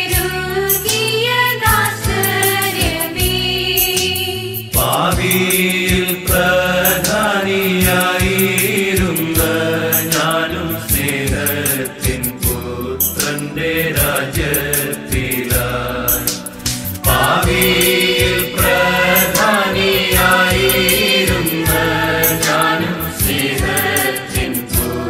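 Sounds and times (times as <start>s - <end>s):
devotional song with percussion: 0.0s - 25.0s.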